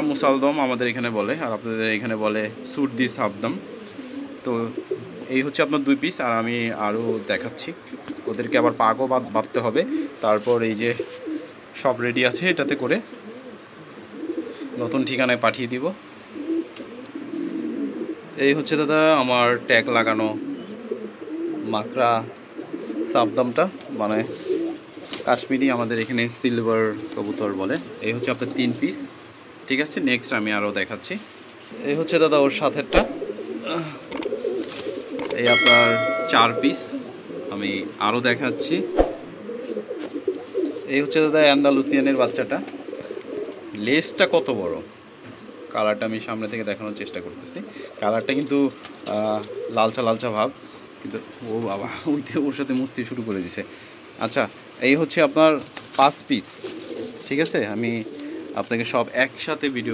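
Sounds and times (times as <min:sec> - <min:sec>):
man talking: 0:00.0 - 0:03.6, 0:04.5 - 0:11.0, 0:11.8 - 0:13.0, 0:18.4 - 0:20.4, 0:25.3 - 0:29.1, 0:31.8 - 0:34.1, 0:35.3 - 0:39.0, 0:45.8 - 0:56.6, 0:57.3 - 0:59.9
pigeons cooing: 0:01.6 - 0:25.8, 0:26.4 - 0:30.5, 0:31.2 - 0:51.5, 0:56.4 - 0:59.0.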